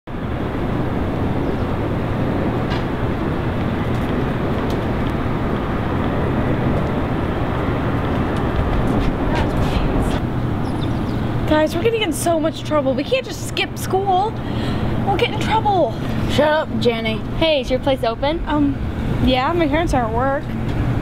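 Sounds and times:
street traffic rumble: 0:00.1 - 0:21.0.

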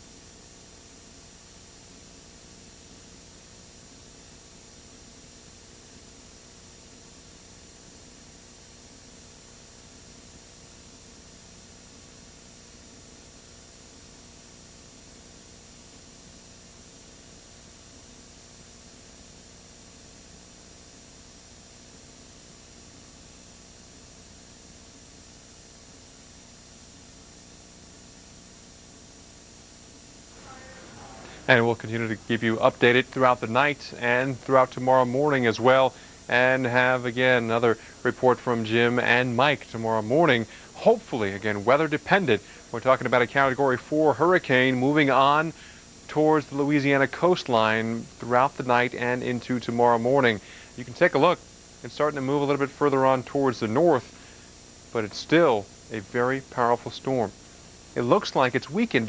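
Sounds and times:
faint electrical hum: 0:00.0 - 0:59.0
tape hiss: 0:00.0 - 0:59.0.

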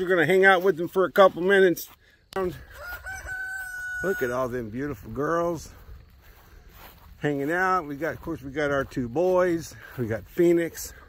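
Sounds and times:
rooster crowing: 0:02.5 - 0:04.6.

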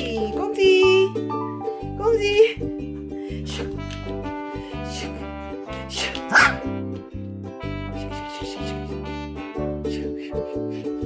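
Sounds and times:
background music: 0:00.0 - 0:11.0
dog barking: 0:06.2 - 0:06.7.

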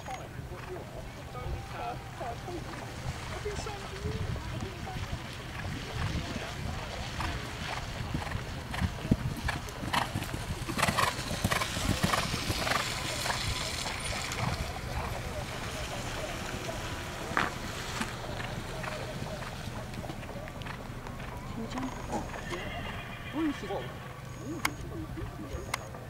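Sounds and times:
horse hoofbeats on grass: 0:00.0 - 0:26.0
indistinct background voices: 0:00.0 - 0:26.0.

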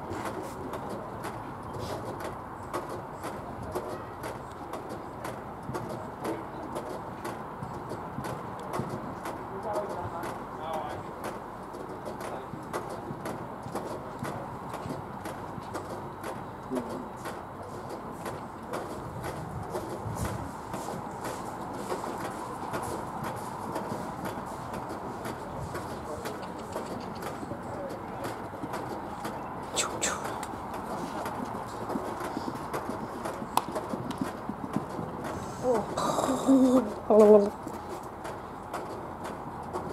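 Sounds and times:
murmur of distant voices: 0:00.0 - 0:39.9
horse hoofbeats on grass: 0:30.3 - 0:36.0.

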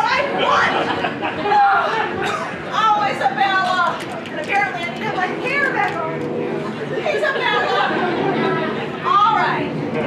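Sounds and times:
overlapping voices talking: 0:00.0 - 0:10.0.

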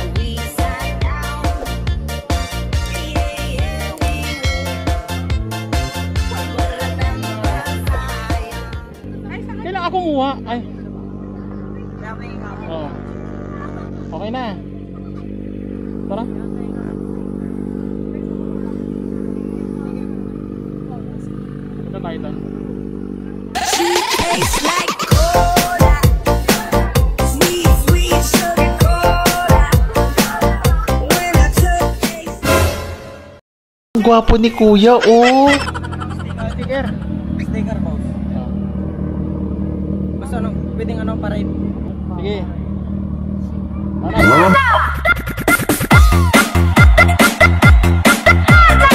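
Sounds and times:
motorcycle engine idling: 0:06.1 - 0:23.6, 0:35.6 - 0:44.4
voices: 0:06.3 - 0:31.9, 0:34.0 - 0:48.9
person speaking: 0:34.0 - 0:37.0.

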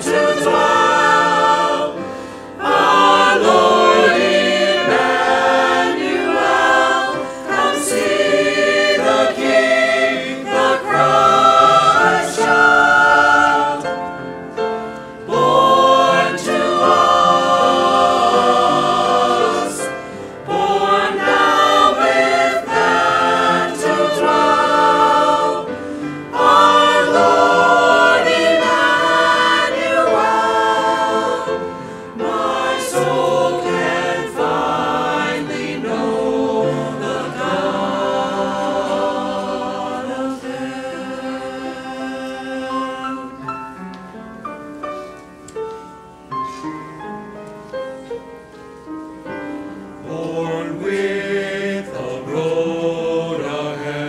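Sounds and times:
choir breaths: 0:00.0 - 0:41.9, 0:44.8 - 0:45.4
church choir singing: 0:00.0 - 0:54.0.

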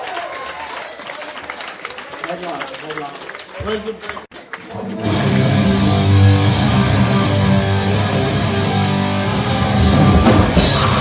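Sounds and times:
bass guitar notes: 0:04.7 - 0:11.0
distorted electric guitar chords: 0:04.7 - 0:11.0
drums crashing: 0:05.0 - 0:11.0.

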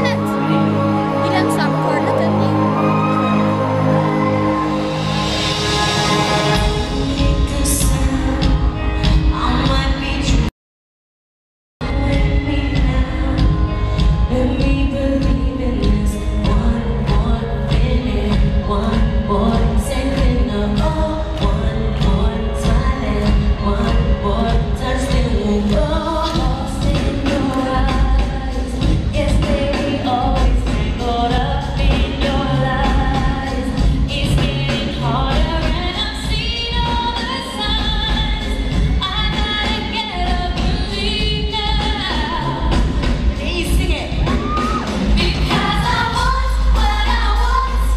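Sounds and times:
band playing steady beat: 0:04.9 - 0:10.4
women singing: 0:06.5 - 0:10.5, 0:11.8 - 0:47.9.

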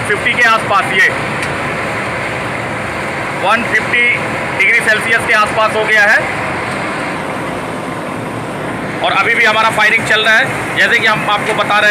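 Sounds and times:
blower burner rushing: 0:00.0 - 0:11.9.

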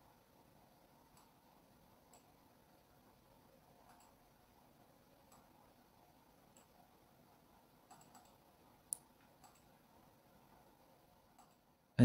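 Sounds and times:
computer mouse clicks: 0:01.1 - 0:01.4, 0:02.1 - 0:02.4, 0:03.8 - 0:04.2, 0:05.3 - 0:05.6, 0:06.5 - 0:06.8, 0:07.8 - 0:09.8, 0:11.4 - 0:11.7.

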